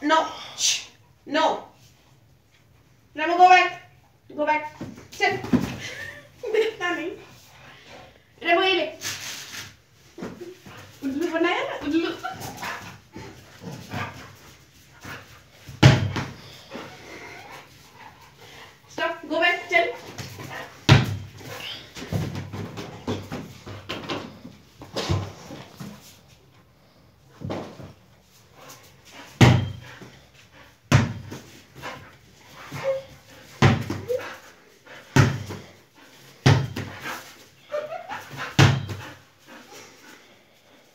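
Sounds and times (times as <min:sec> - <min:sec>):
dog whining: 0:37.6 - 0:39.1.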